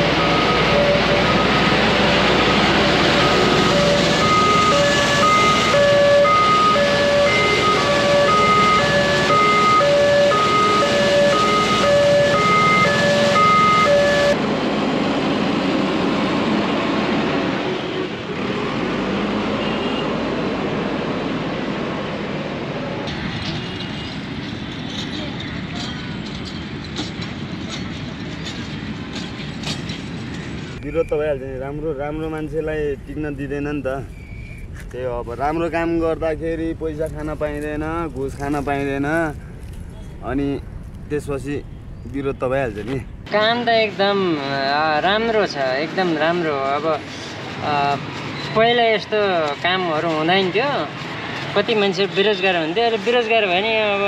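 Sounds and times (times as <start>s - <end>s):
street-washing truck running: 0.0s - 54.0s.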